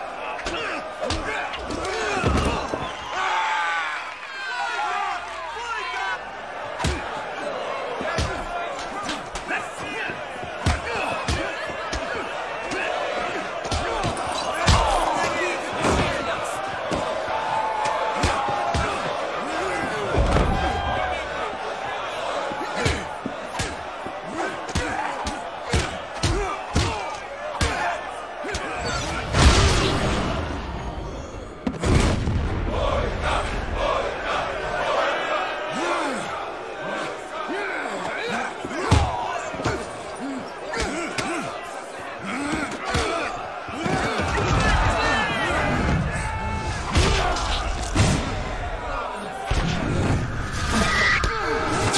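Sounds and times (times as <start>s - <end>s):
crowd shouting: 0.0s - 51.9s.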